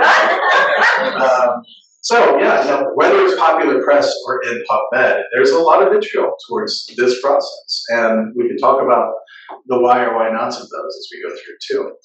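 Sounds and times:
loud laughter: 0.0 - 1.6.

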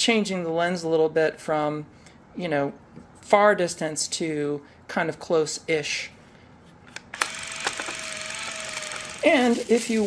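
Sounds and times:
camera electric whine and hiss: 7.2 - 9.2.

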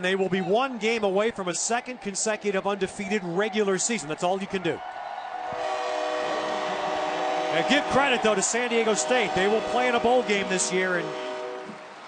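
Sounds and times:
crowd noise: 0.0 - 12.0
stadium horn chord: 5.5 - 11.9.

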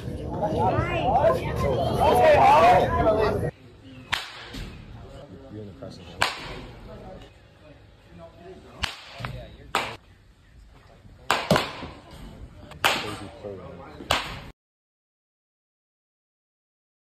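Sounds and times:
baseball bat hitting balls: 4.0 - 4.8, 6.1 - 6.8, 8.8 - 10.0, 11.2 - 13.4, 14.0 - 14.5.

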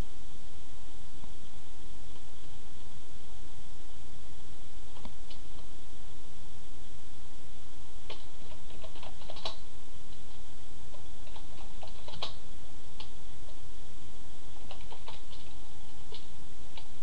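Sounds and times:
steady low hum: 0.0 - 17.0
typing on computer keyboard: 8.1 - 9.6, 10.9 - 12.4, 14.6 - 16.9.

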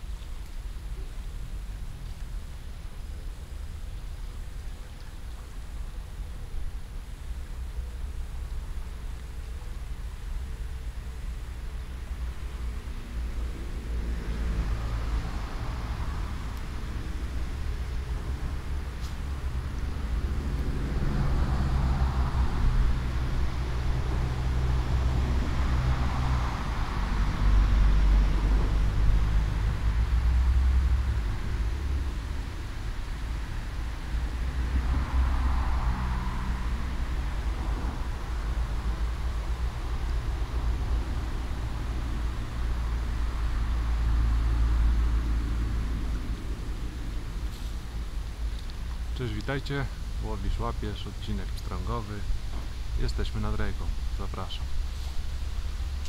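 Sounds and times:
road traffic drone: 0.0 - 56.0
vehicles passing: 0.9 - 56.0.

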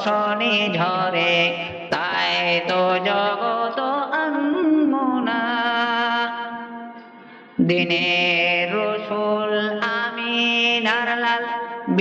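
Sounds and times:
person singing ornamented phrase: 0.0 - 6.1, 7.6 - 10.3, 11.6 - 12.0.

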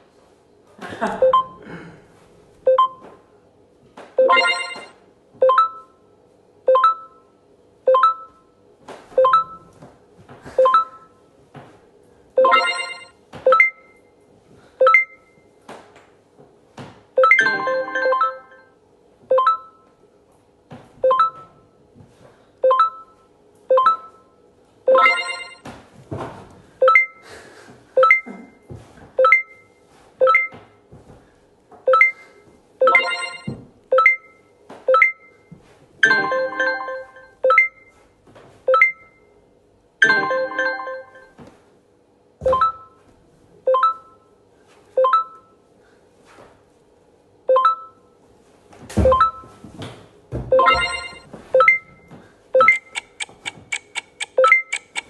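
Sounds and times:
short electronic chime tones: 50.6 - 51.8.

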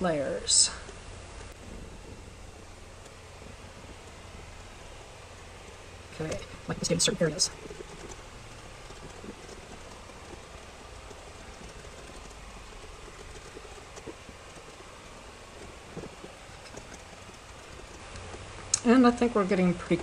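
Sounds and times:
faint background hiss: 0.0 - 20.0.

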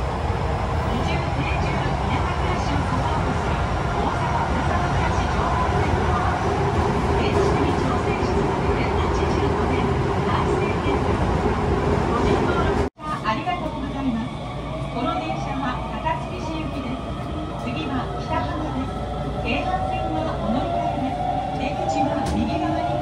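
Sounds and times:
subway wheels and motors rumbling: 0.0 - 23.0
muffled onboard announcement: 0.9 - 6.5, 7.1 - 11.3, 12.1 - 23.0.

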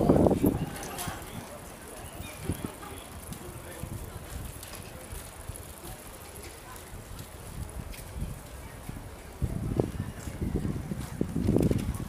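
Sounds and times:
indistinct voices of passers-by: 0.0 - 12.0
low rumbling on microphone: 2.3 - 12.0.

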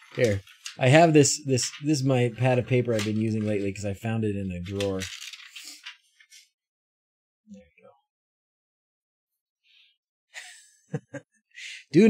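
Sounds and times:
paper rustling: 0.0 - 3.8, 4.6 - 6.5.

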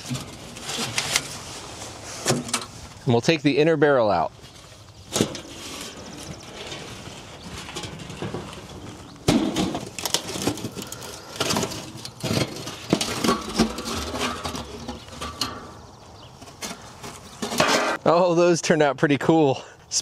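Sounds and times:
steady background noise: 0.0 - 20.0
steel drums clanking and scraping: 5.1 - 15.9, 16.5 - 18.0.

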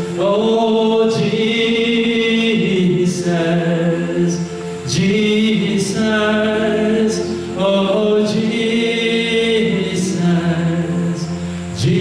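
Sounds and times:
slow worship singing: 0.0 - 12.0.

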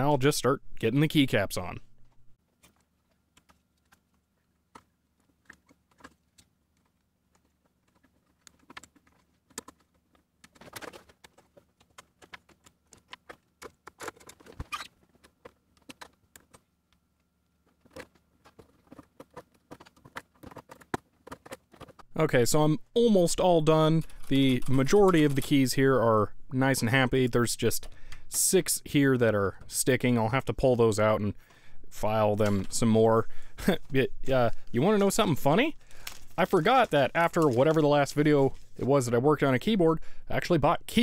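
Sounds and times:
plastic keycaps clicking: 17.9 - 22.0.

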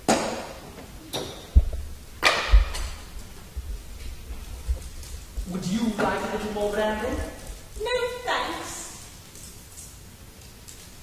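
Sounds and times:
dull low thumps: 1.5 - 5.6.

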